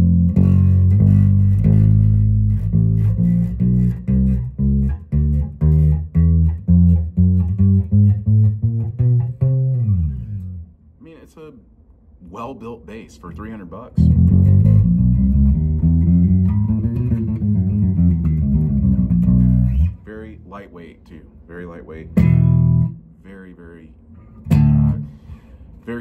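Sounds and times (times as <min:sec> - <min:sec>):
electric bass notes through amp: 0:00.0 - 0:10.8, 0:14.0 - 0:20.4, 0:22.0 - 0:23.1, 0:24.2 - 0:25.5.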